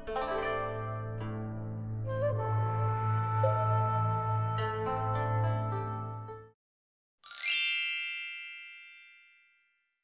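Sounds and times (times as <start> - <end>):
high metallic chime: 7.2 - 9.8.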